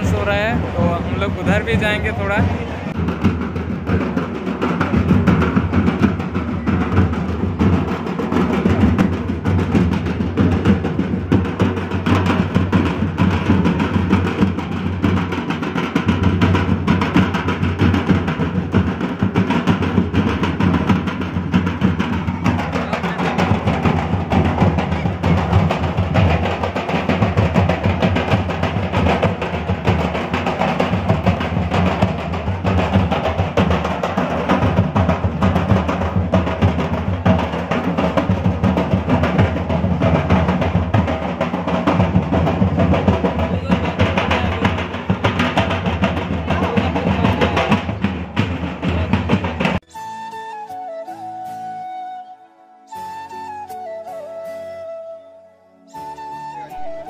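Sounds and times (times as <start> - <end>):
barrel drums beaten with sticks: 0.0 - 49.9.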